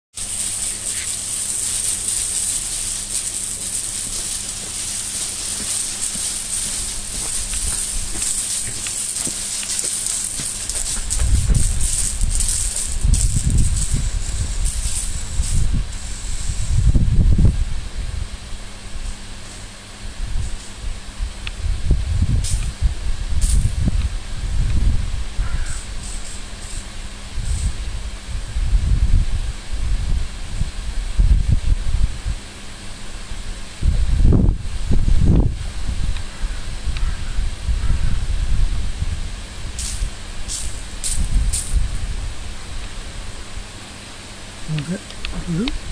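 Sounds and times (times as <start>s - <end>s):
water spraying from nozzles: 0.1s - 28.3s, 32.0s - 45.9s
wind buffeting microphone: 3.7s - 18.4s, 20.1s - 26.0s, 27.2s - 32.5s, 33.8s - 42.6s.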